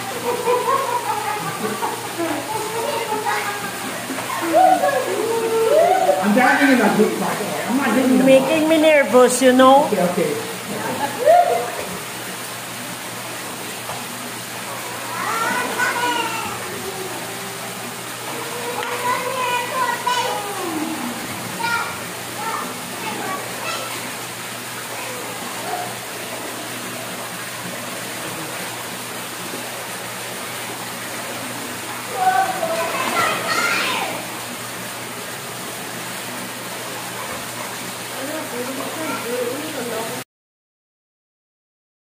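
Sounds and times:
children calling and shrieking: 0.0 - 6.7, 14.7 - 26.2, 32.0 - 34.4
fountain water falling into pool: 0.0 - 40.2.

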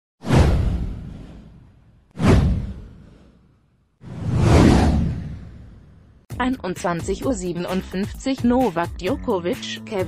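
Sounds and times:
swoosh sweeping down: 4.0 - 6.1.

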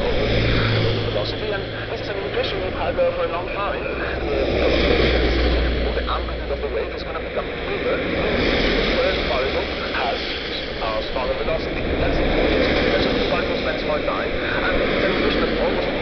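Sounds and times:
moving vehicle road noise: 0.0 - 16.0.

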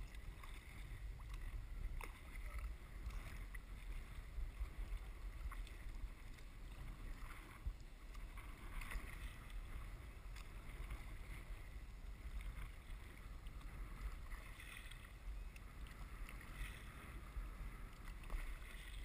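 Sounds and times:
paddle water splashes and drips: 0.0 - 19.0
steady low rumble: 0.0 - 19.0.

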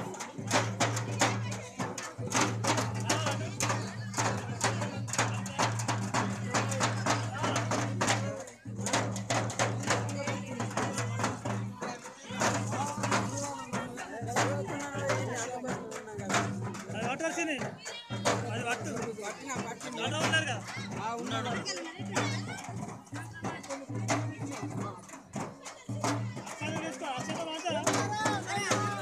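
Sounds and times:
music: 0.0 - 29.0
voices: 0.0 - 29.0.

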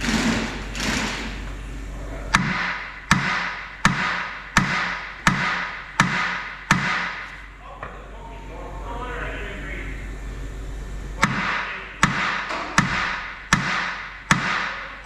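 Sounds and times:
hammer striking steel: 2.3 - 7.4, 11.2 - 15.0.

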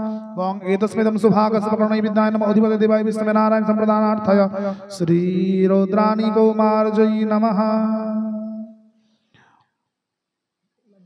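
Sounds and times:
faint breathy sound: 9.0 - 9.8.

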